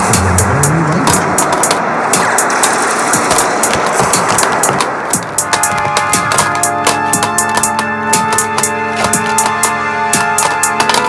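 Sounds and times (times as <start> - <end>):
hi-hats ticking: 0.0 - 11.0
synthpop instrumental: 0.0 - 11.0.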